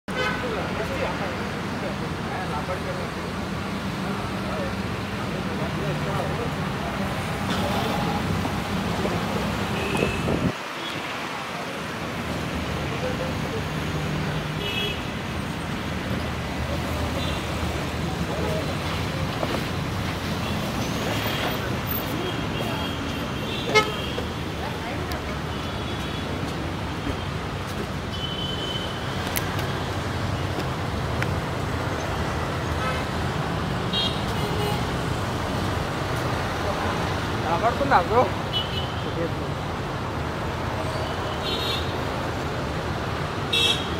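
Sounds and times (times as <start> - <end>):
road traffic noise: 0.0 - 43.9
car engines passing: 0.4 - 41.3
car horn toots: 23.6 - 24.2.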